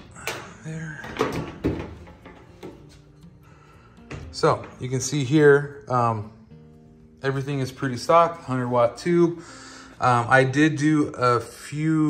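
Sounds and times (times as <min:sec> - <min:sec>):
faint guitar music: 0:00.0 - 0:12.0.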